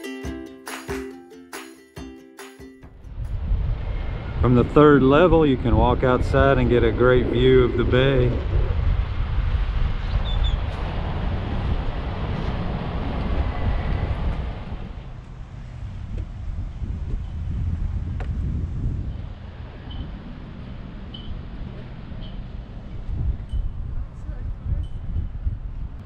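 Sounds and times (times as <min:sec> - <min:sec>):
wind buffeting microphone: 0:03.0 - 0:26.0.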